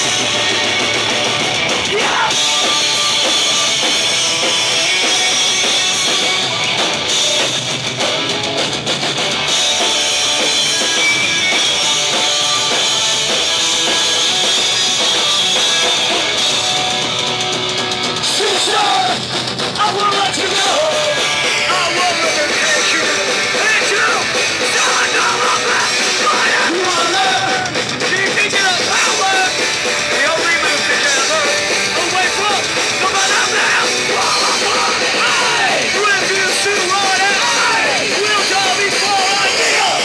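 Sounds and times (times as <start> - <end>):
bass guitar: 0.0 - 40.0
distorted electric guitars: 0.0 - 40.0
drums with cymbals: 0.0 - 40.0
shouted vocals: 1.9 - 3.0, 18.2 - 19.2, 19.8 - 29.6, 30.2 - 40.0.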